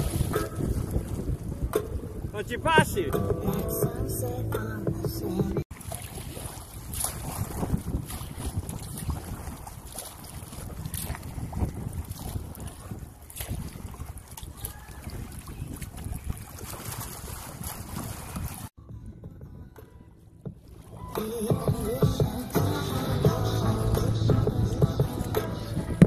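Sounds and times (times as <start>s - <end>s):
water splashing around kayak: 0.0s - 3.7s, 5.1s - 18.8s, 20.4s - 26.0s
wind buffeting microphone: 0.0s - 4.1s, 5.2s - 20.7s.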